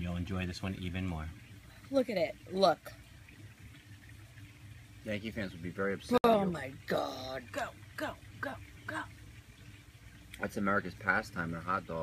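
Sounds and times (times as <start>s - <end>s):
faint low hum and hiss: 0.0s - 12.0s.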